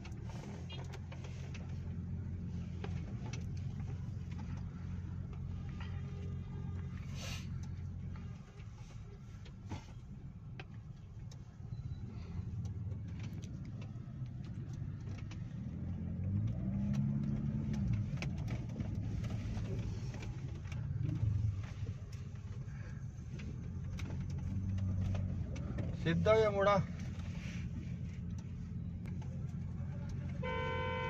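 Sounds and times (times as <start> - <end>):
low engine note: 0.0 - 31.0
traffic rumble: 0.0 - 31.0.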